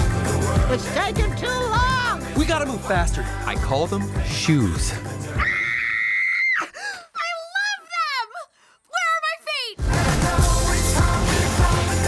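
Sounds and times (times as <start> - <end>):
girl screaming with delight: 5.4 - 6.8
girl squealing: 5.4 - 8.4.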